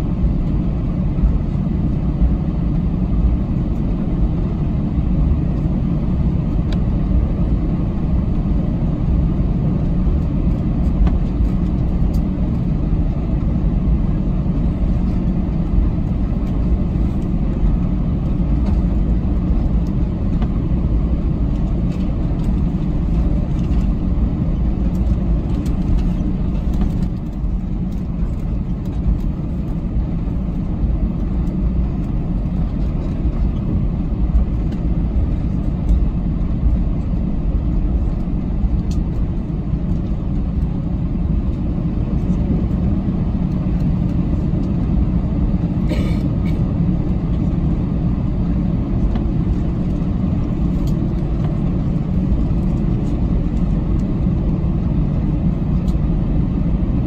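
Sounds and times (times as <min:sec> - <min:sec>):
jet engines rumbling in cabin: 0:00.0 - 0:57.0.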